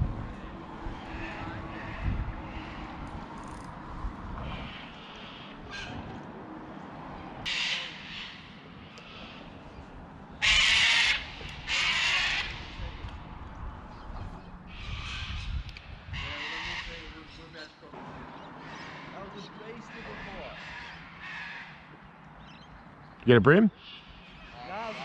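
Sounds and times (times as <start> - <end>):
crow cawing: 0.8 - 3.6, 4.4 - 6.1, 7.4 - 9.7, 10.3 - 13.2, 14.7 - 22.6, 23.8 - 25.0.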